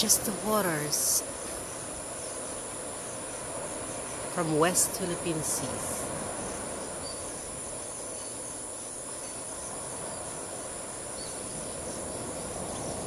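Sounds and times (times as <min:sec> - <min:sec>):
insects trilling: 0:00.0 - 0:13.0
sea surf: 0:00.0 - 0:13.0
faint bird chirps: 0:06.4 - 0:10.4, 0:11.1 - 0:13.0.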